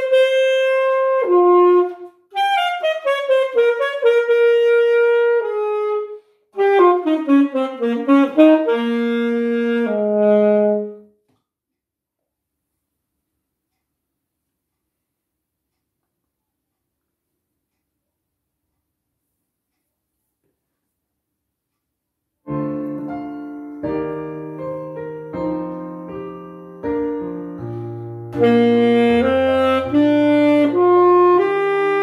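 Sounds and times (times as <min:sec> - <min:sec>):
alto saxophone: 0:00.0 - 0:11.2, 0:22.5 - 0:32.0
piano chords: 0:22.5 - 0:32.0.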